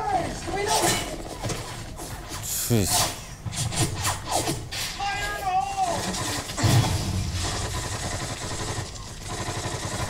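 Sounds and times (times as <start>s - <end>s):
gunfire and explosions: 2.8s - 10.0s.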